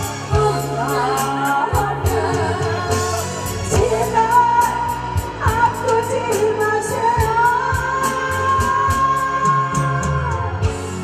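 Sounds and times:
amplified backing track: 0.0s - 11.0s
drum beat with cymbals: 0.0s - 11.0s
person singing: 0.0s - 11.0s.

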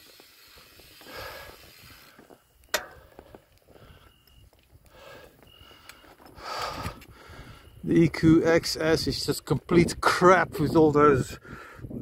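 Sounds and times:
bicycle rolling over dirt path: 0.0s - 7.1s
rider breathing: 0.0s - 7.8s, 11.4s - 12.0s.

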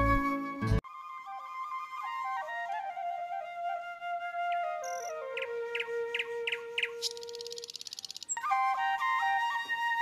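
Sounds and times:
flute music: 0.0s - 10.0s
buzzing bird trill: 6.2s - 8.4s
short bird chirps: 6.2s - 8.4s.

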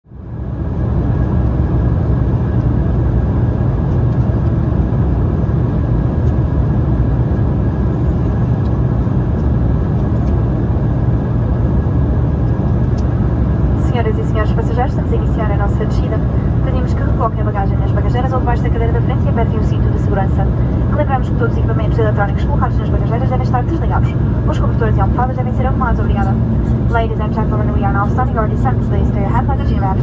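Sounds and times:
airliner cabin engine drone: 0.1s - 30.0s.

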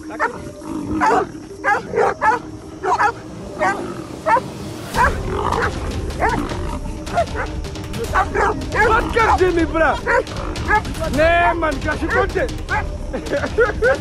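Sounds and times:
animal cries: 0.0s - 7.5s
animals fighting: 0.0s - 11.2s
background music: 0.0s - 14.0s.

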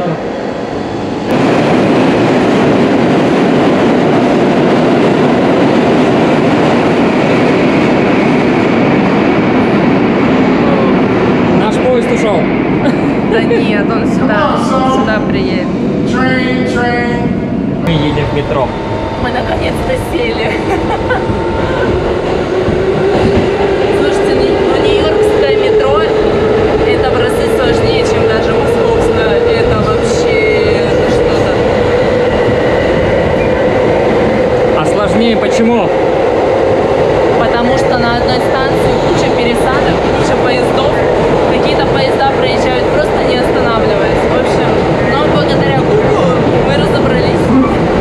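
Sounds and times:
subway motor whine: 0.0s - 48.0s
wheels rumbling on rails: 0.0s - 48.0s.

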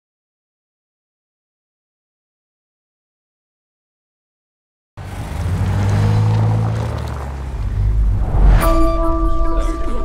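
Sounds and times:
cars driving past: 5.0s - 9.8s.

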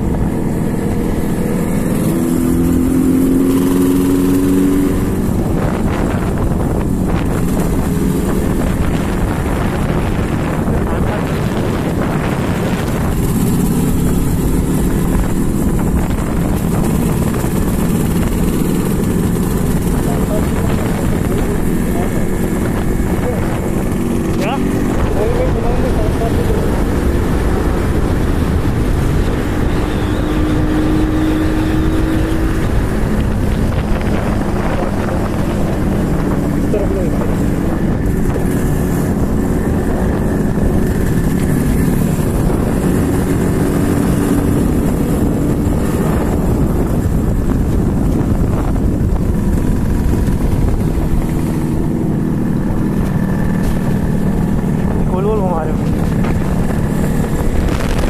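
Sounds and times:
motorcycle engine: 0.0s - 58.0s
road noise: 0.0s - 58.0s
two-stroke motorcycle engine running: 0.0s - 58.0s.

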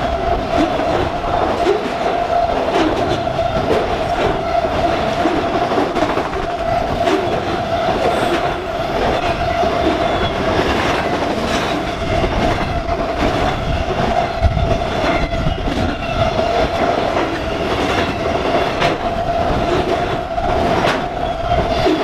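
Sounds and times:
train rumbling past: 0.0s - 22.0s
wheels clicking over rail joints: 0.0s - 22.0s.

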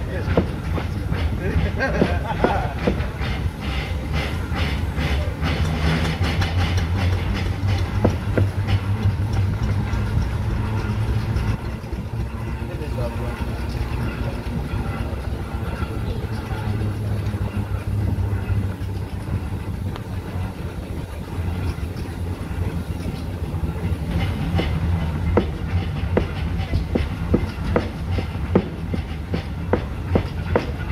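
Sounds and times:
steam wagon engine rumbling: 0.0s - 30.9s.

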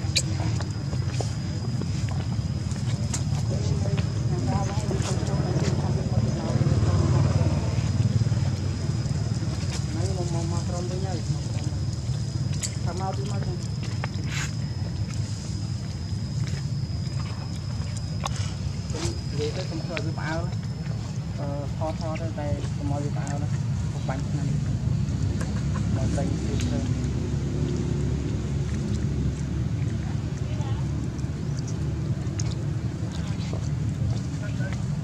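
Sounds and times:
high-pitched whine: 0.0s - 35.0s
steady low rumble: 0.0s - 35.0s.

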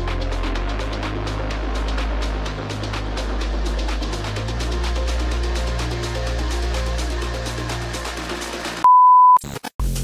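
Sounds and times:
background music: 0.0s - 8.8s
electronic dance track: 0.0s - 8.8s
high beep: 8.8s - 9.4s.

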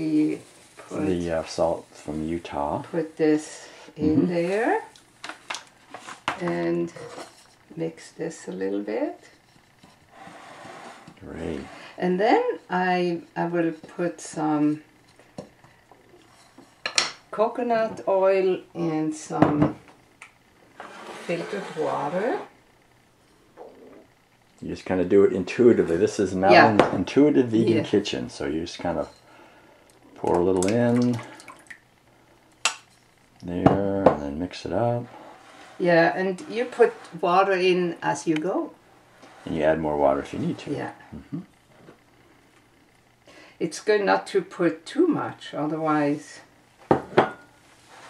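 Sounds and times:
spatula stirring flour in bowl: 35.1s - 37.5s
kitchenware knock: 46.9s - 47.4s.

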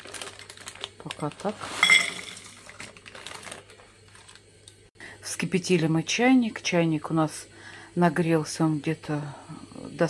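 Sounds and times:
paper rustling: 0.0s - 4.5s.

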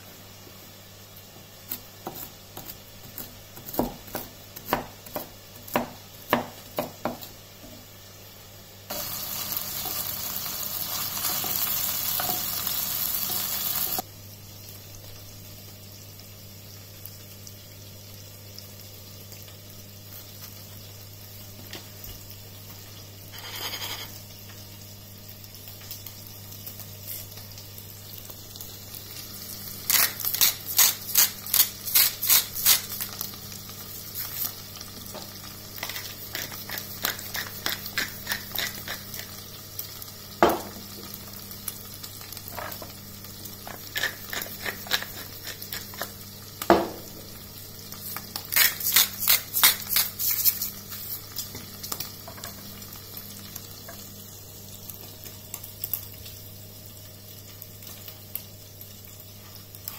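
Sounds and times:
loud frying sizzle: 0.0s - 59.9s
pepper mill grinding: 8.9s - 14.0s, 29.8s - 33.2s, 35.8s - 39.4s, 43.6s - 46.2s, 48.0s - 51.2s.

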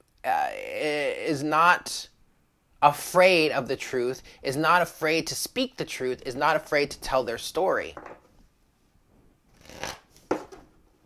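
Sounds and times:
cards being shuffled: 9.5s - 10.7s.

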